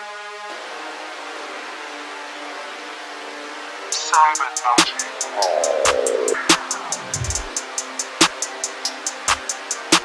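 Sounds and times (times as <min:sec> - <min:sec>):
synthesizer pad chords: 0:05.0 - 0:07.9.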